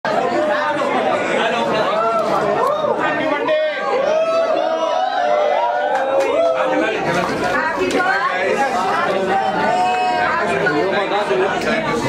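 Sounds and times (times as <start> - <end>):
overlapping voices talking: 0.1 - 12.0.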